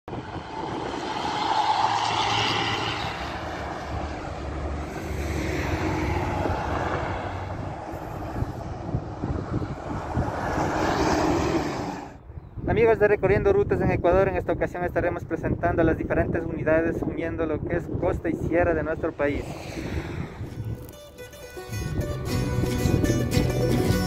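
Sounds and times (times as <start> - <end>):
buses driving past: 0.1 - 12.3.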